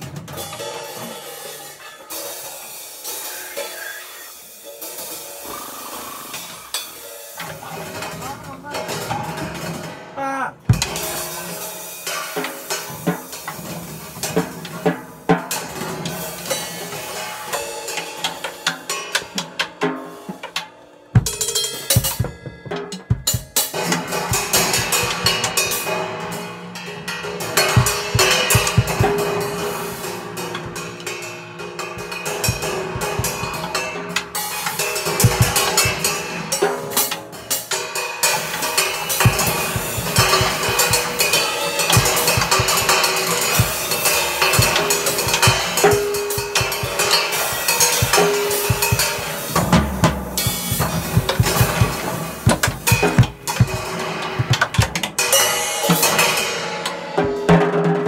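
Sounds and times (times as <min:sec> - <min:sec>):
drum kit played with sticks: 0:00.0 - 0:58.0.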